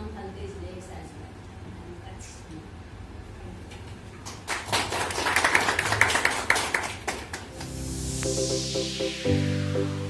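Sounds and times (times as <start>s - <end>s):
audience clapping: 4.2s - 7.8s.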